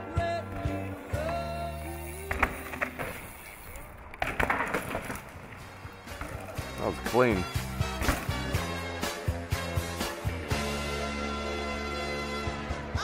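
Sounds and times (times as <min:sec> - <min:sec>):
pop song music: 0:00.0 - 0:03.5, 0:05.8 - 0:13.0
bike tyres skidding on loose dirt: 0:00.7 - 0:07.0.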